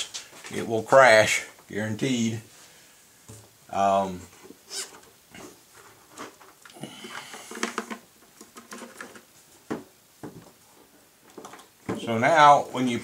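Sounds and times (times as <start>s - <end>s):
light clicks and rustles of handling: 4.3s - 13.0s.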